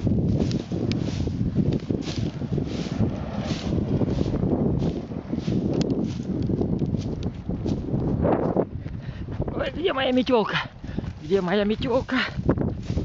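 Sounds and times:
twig broom swishing: 0.0 - 7.8, 11.2 - 13.0
wind rumble on microphone: 0.0 - 13.0.

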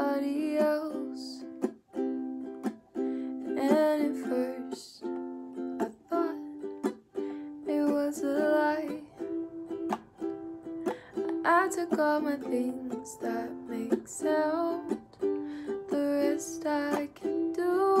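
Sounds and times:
woman singing: 0.0 - 1.6, 3.4 - 6.9, 7.5 - 9.4, 11.2 - 18.0
ukulele strumming chords: 0.0 - 18.0.

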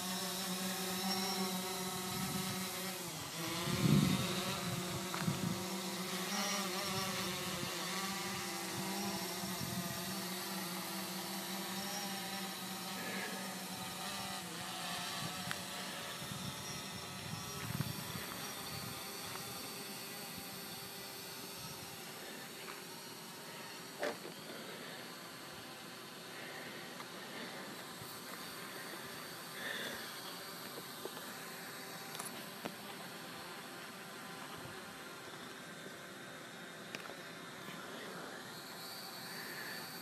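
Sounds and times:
drone propellers humming: 0.0 - 40.0.

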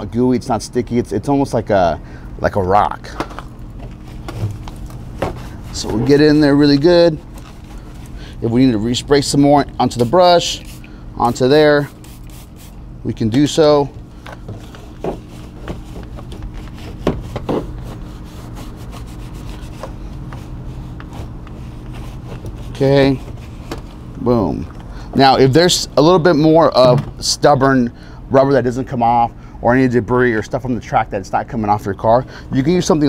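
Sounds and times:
steady low hum: 0.0 - 33.0
brush scrubbing a tire: 5.4 - 7.9, 9.8 - 12.8, 14.9 - 23.6.

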